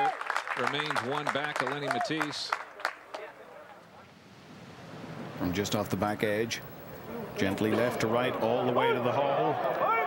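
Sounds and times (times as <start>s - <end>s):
outdoor ambience hiss: 0.1s - 10.0s.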